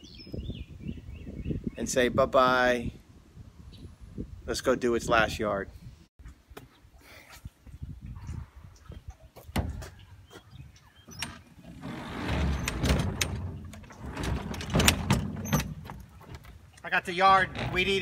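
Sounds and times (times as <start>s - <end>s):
lawn mower dragged across truck bed: 11.1s - 16.5s.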